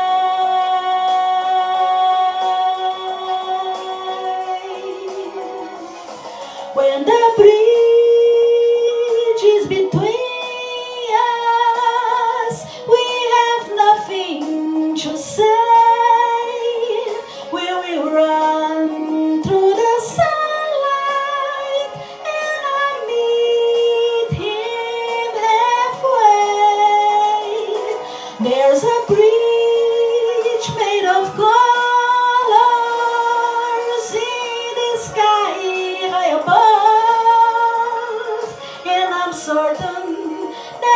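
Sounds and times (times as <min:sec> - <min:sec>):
woman singing into a microphone: 0:00.0 - 0:40.9.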